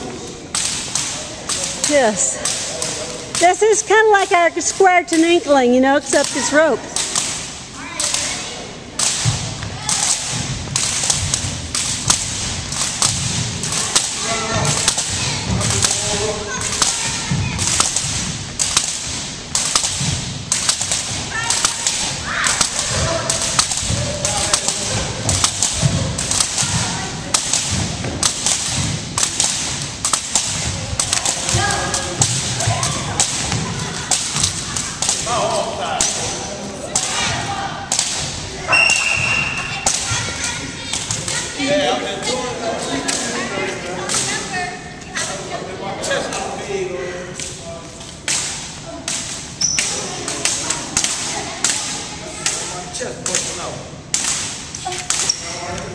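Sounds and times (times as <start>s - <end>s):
jump ropes slapping wooden floor: 0.5s - 41.6s, 48.1s - 52.6s.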